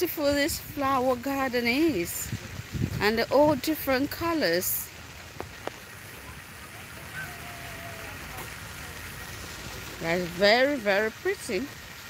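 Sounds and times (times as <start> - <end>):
distant voice: 6.2 - 9.4.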